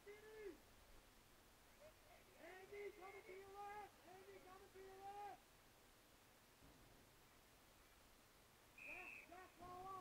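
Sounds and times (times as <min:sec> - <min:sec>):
faint distant shouted calls: 0:08.7 - 0:10.0
high whistle-like tone: 0:08.8 - 0:09.4.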